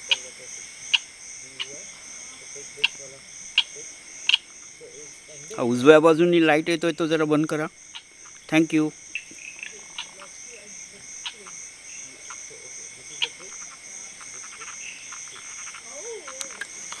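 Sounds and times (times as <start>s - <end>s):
click-like frog calls: 0.0s - 0.3s, 0.9s - 1.8s, 2.8s - 4.6s, 7.4s - 8.5s, 9.1s - 10.4s, 11.2s - 12.5s, 13.1s - 17.0s
insect trills: 0.0s - 17.0s.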